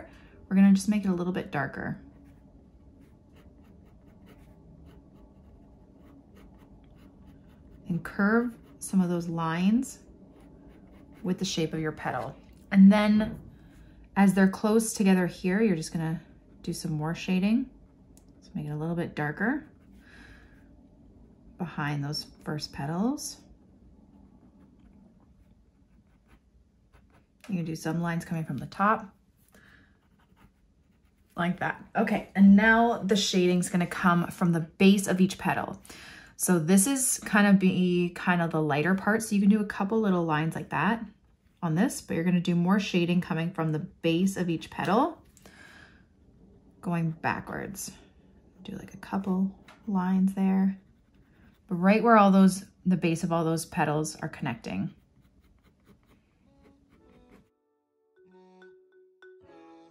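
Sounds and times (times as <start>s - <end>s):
pen scratching on paper: 3.0s - 9.3s, 30.0s - 31.4s, 54.9s - 57.5s.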